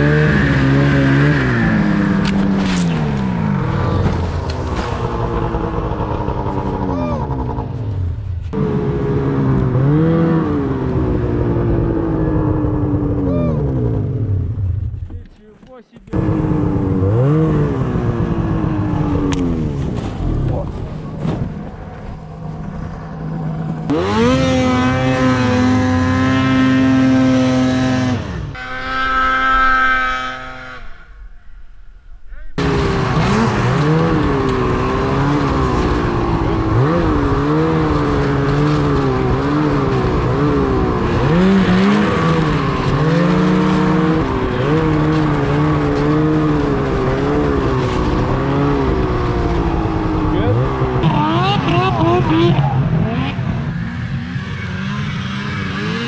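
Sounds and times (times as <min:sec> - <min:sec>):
snowmobile engine revving: 0:00.0 - 0:31.6, 0:32.3 - 0:56.0.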